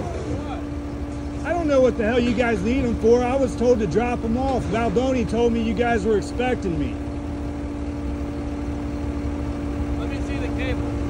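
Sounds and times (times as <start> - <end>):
constant steady tone: 0.0 - 11.0
diesel engine idling: 0.0 - 11.0.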